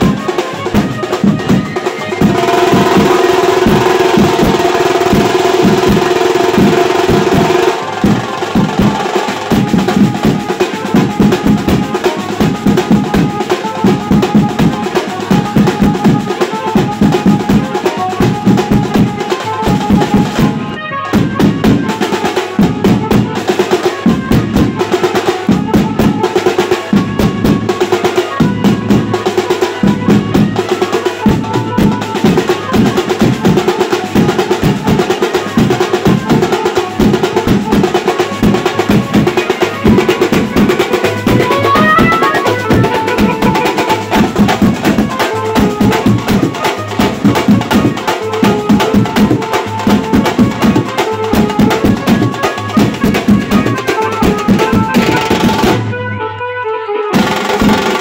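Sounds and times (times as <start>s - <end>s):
side drums struck with sticks: 0.0s - 16.2s, 31.2s - 55.9s, 57.2s - 58.0s
steel barrel drums: 0.0s - 56.0s, 57.1s - 58.0s
bass drum beaten: 35.6s - 55.9s.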